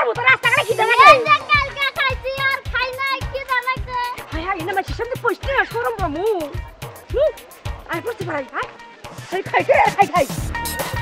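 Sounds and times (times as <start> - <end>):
background music with beat: 0.0 - 11.0
children chattering: 0.4 - 8.5.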